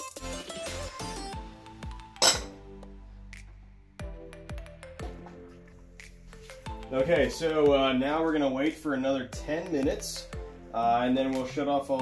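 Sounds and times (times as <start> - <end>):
background music: 0.0 - 12.0
glass clinking on metal kettle: 2.2 - 2.6.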